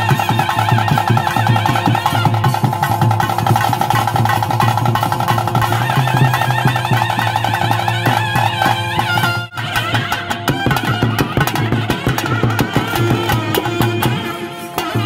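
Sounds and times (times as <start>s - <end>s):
fast drumming: 0.0s - 15.0s
reed pipe melody: 0.0s - 15.0s.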